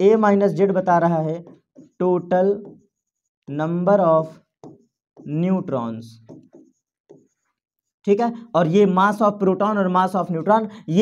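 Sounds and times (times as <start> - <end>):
person speaking: 0.0 - 7.4, 8.0 - 11.0
pen scratching on board: 0.6 - 8.1.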